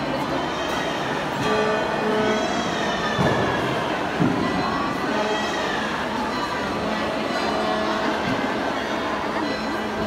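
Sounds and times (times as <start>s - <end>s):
children's voices: 0.0s - 10.0s
crowd chattering in hall: 0.0s - 10.0s.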